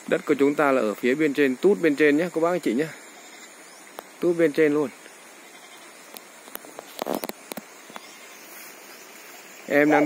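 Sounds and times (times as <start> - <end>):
faint steady hiss: 0.0 - 10.0
footsteps on dry grass: 6.6 - 9.8.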